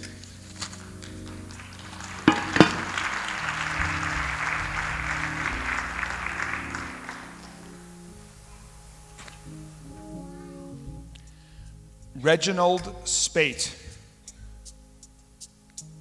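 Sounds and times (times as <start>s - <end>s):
soft keyboard chords: 0.0s - 16.0s
applause: 1.2s - 7.8s
sharp knocks: 2.3s - 3.0s.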